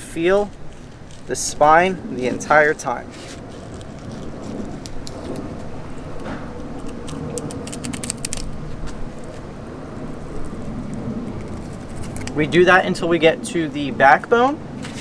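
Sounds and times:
steady low rumble: 0.0s - 15.0s
knife scraping fish backbone: 0.3s - 9.4s, 10.0s - 12.4s.

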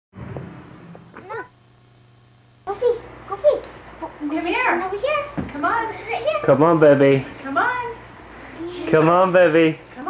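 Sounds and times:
electrical hum: 0.1s - 10.0s.

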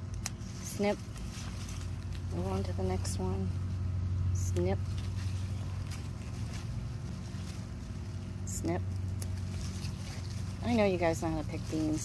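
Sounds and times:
bean pods snapping: 0.0s - 2.7s, 4.5s - 10.7s
low mechanical hum: 0.0s - 12.0s.

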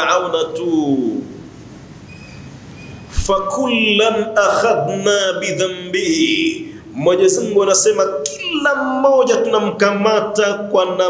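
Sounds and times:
man speaking: 3.1s - 11.0s.

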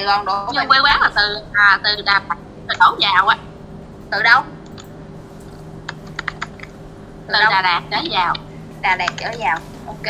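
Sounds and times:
steady line hum: 0.0s - 10.0s
computer keyboard clicks: 5.5s - 6.8s, 9.0s - 9.4s.

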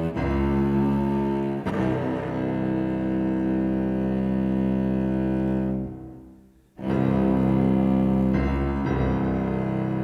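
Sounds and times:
cello long bowed note: 0.0s - 10.0s.

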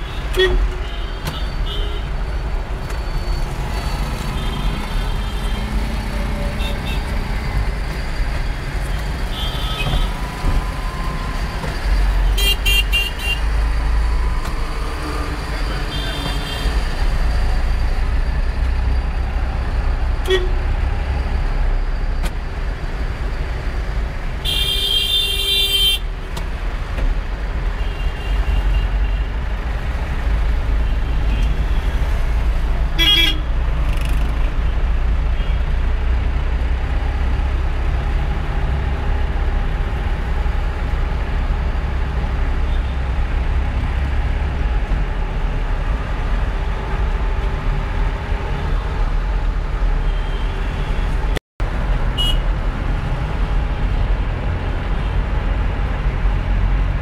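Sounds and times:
car horns honking: 33.0s - 33.4s, 52.2s - 52.4s.

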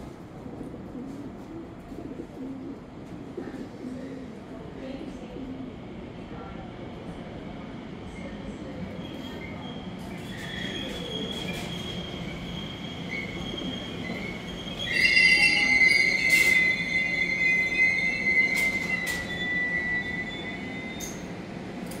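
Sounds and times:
electric train rumble and whine: 0.0s - 22.0s
high-pitched brake squeal: 9.1s - 21.3s.

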